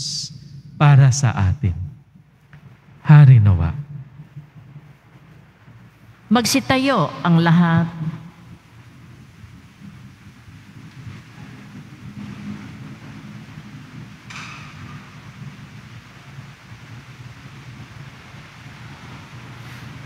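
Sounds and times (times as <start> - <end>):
crowd rumble in church: 0.9 - 20.0.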